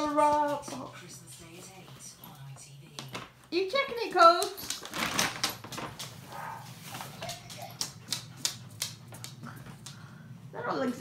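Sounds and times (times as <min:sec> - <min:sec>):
plastic bag crinkling and clicking: 0:04.4 - 0:06.3.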